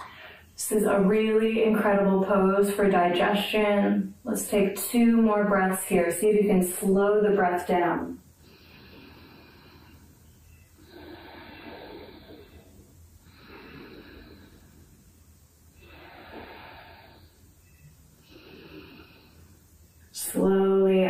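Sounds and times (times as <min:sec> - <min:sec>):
woman breathing slowly: 0:00.0 - 0:00.6, 0:08.3 - 0:20.1.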